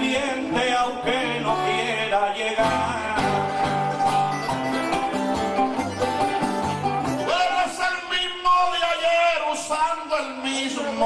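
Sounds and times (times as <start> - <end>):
laud melody: 0.0 - 7.6
acoustic guitar bass notes: 0.0 - 7.8.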